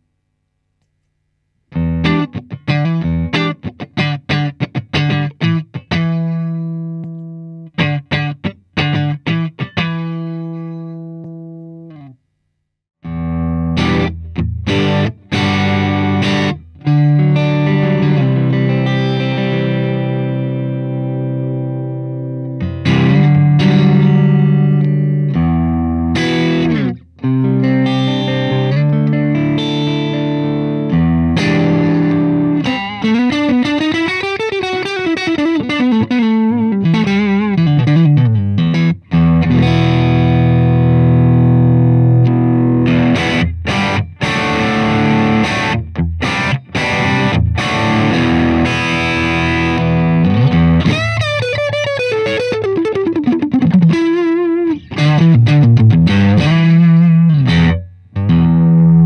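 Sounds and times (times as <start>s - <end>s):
electric guitar chords: 1.7s - 12.2s, 13.0s - 59.0s.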